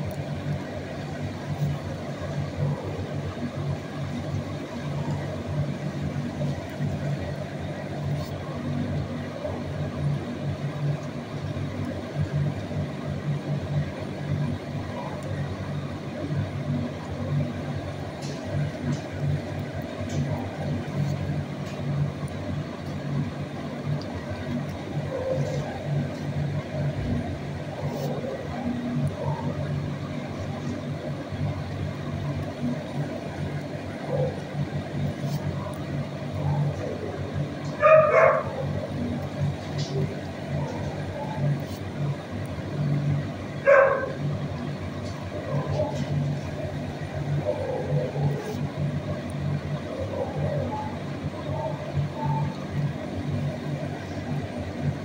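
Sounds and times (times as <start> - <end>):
steady low hum: 0.0 - 55.0
dog barking: 25.1 - 25.8, 27.8 - 29.6, 34.0 - 34.4, 37.8 - 38.8, 43.6 - 44.2, 47.4 - 48.4.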